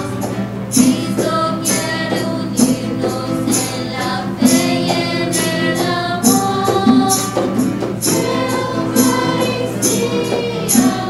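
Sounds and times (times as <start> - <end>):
band playing: 0.0 - 11.0
choir singing: 0.0 - 11.0
tambourine-like percussion beat: 0.0 - 11.0.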